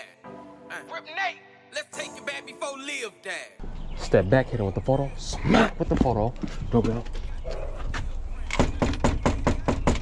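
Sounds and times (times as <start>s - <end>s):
rapid knocking on a door: 8.6s - 10.0s.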